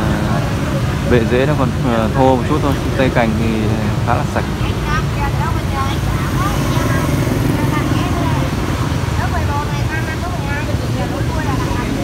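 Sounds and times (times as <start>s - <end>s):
distant people chattering: 0.0s - 12.0s.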